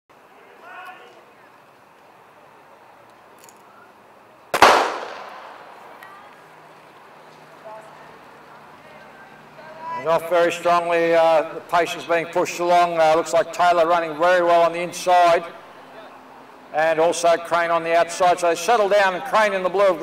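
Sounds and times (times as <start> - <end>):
starter's gun crack: 4.6 - 6.0.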